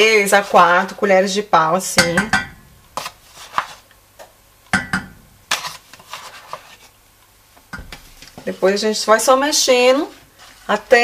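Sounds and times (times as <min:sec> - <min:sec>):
paper bag rustling: 0:05.5 - 0:07.0.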